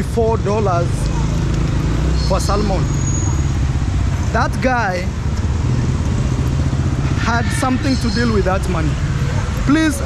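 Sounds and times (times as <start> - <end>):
motor scooter engines running: 0.0 - 10.0
street traffic rumble: 0.0 - 10.0.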